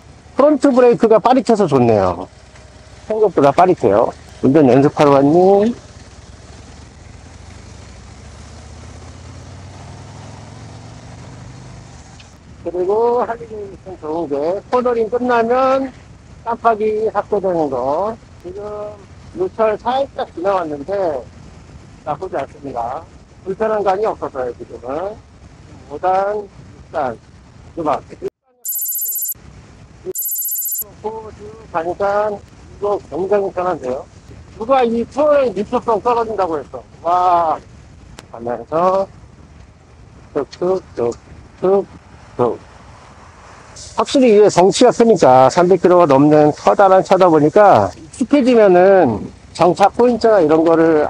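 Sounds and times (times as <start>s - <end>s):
road noise: 0.0s - 51.0s
high electronic ringing tone: 28.6s - 29.4s, 30.1s - 30.9s
wind noise: 30.9s - 42.8s.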